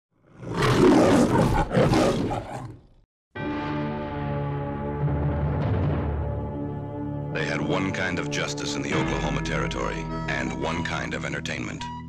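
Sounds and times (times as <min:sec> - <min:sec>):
lion roaring: 0:00.2 - 0:03.0.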